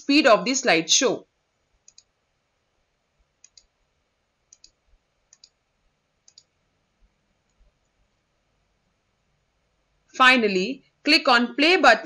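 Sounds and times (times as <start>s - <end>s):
faint mouse clicks: 1.8s - 2.1s, 3.4s - 3.8s, 4.5s - 5.6s, 6.2s - 6.6s.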